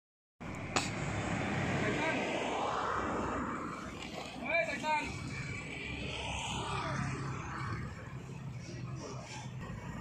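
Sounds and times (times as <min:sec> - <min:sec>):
outdoor background rumble: 0:00.4 - 0:10.0.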